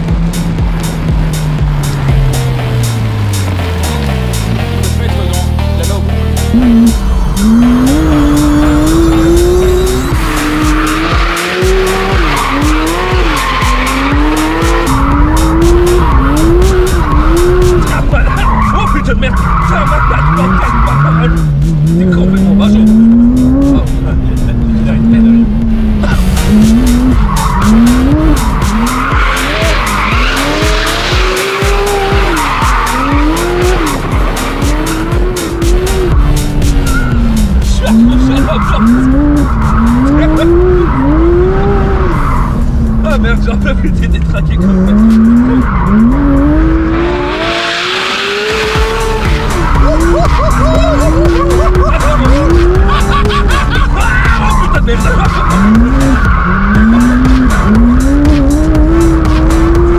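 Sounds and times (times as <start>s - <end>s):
car engine revving: 0.0s - 59.9s
tyres squealing: 6.5s - 23.8s, 26.5s - 43.3s, 44.3s - 59.9s.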